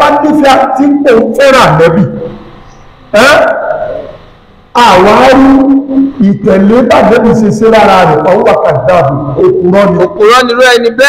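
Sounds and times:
man's amplified voice with echo: 0:00.0 - 0:11.0.

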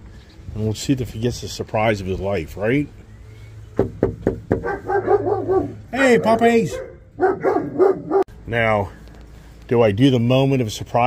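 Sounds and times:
knuckles knocking on door: 0:03.8 - 0:04.7
dogs barking and yipping: 0:04.5 - 0:08.3.

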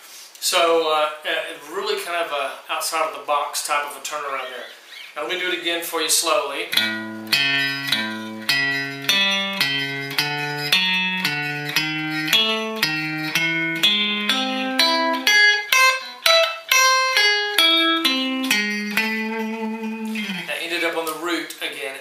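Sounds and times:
electric guitar blues lick: 0:06.7 - 0:20.6.

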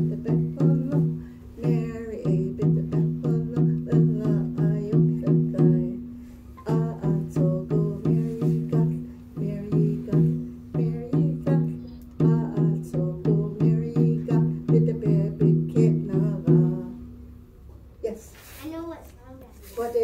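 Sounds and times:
woman singing: 0:00.0 - 0:17.1
frame drum booming: 0:00.0 - 0:17.4.

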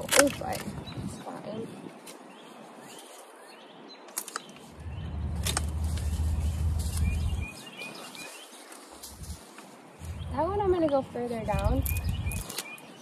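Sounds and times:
loppers snapping canes: 0:00.0 - 0:00.8, 0:04.1 - 0:04.6, 0:05.2 - 0:07.5, 0:11.7 - 0:12.8
bird chirps: 0:00.7 - 0:08.9, 0:10.0 - 0:13.0
low rumble: 0:04.8 - 0:07.6, 0:10.0 - 0:10.8.

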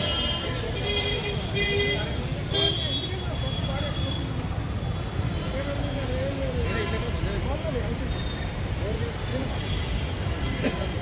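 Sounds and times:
crowd voices talking: 0:00.0 - 0:11.0
traffic rumble: 0:00.0 - 0:11.0.

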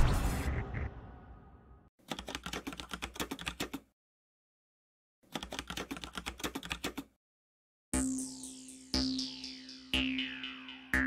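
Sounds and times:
keyboard typing clicks: 0:02.1 - 0:03.8, 0:05.3 - 0:07.1.

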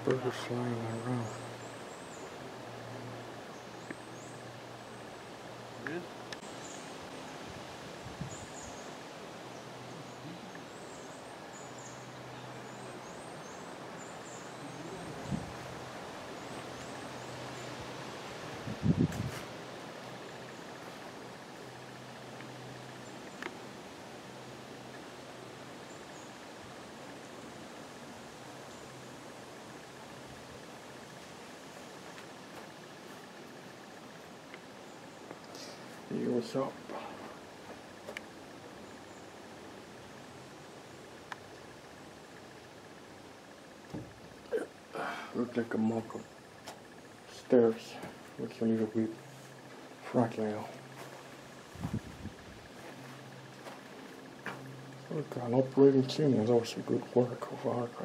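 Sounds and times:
low steady hum: 0:00.0 - 0:58.0
dull thumps: 0:43.9 - 0:44.2.

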